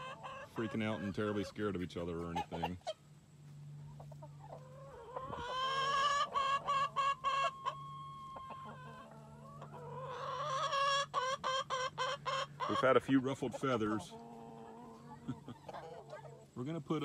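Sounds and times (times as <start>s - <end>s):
chickens clucking and calling: 0.0s - 17.0s.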